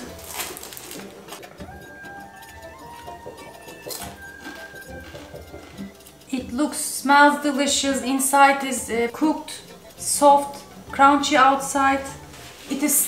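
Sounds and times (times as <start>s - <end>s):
knife crunching through crust: 0.0s - 2.7s
soft background music: 0.0s - 13.0s.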